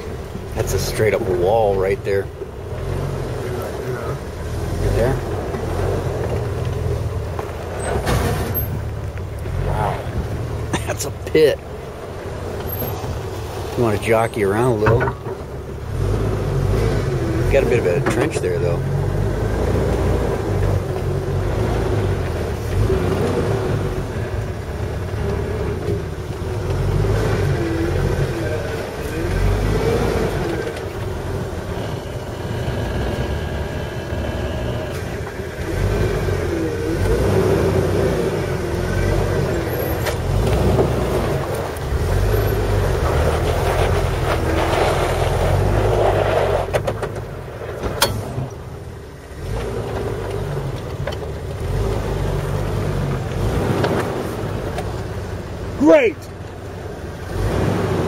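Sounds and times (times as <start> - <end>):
engine rumbling at low speed: 0.0 - 58.0.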